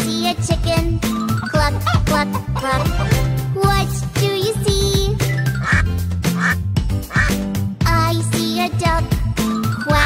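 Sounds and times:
child singing: 0.0s - 2.9s, 3.5s - 5.3s, 7.8s - 10.0s
cheerful music backing: 0.0s - 10.0s.

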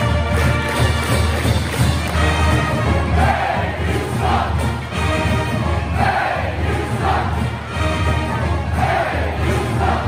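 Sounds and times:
pep band playing: 0.0s - 10.0s
crowd shouting: 6.0s - 7.5s.

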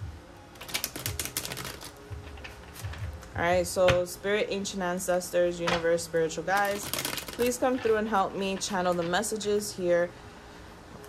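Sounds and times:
cards being shuffled: 0.6s - 3.3s, 6.6s - 7.9s.

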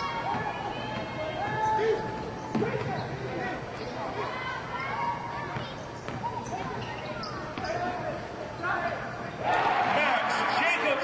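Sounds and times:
voices in an arena: 0.0s - 11.0s.

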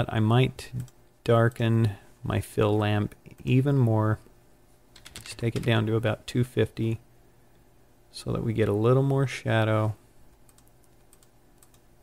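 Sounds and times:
computer mouse clicks: 10.3s - 11.9s.

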